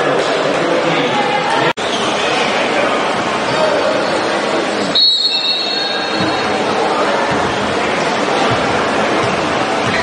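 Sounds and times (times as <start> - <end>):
referee's whistle: 4.9 - 6.2.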